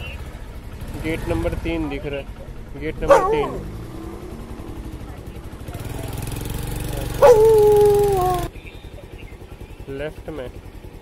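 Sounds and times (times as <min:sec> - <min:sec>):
small petrol engine running: 0:00.0 - 0:11.0.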